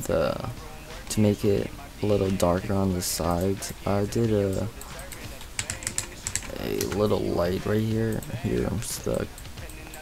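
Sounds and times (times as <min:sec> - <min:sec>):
person speaking: 0:01.1 - 0:09.4
computer keyboard typing clicks: 0:04.5 - 0:07.1.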